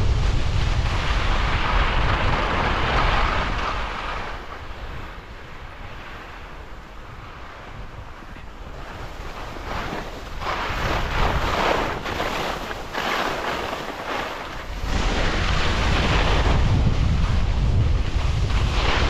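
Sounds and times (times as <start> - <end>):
skis scraping on snow: 0.0 - 19.0
wind buffeting microphone: 0.0 - 19.0.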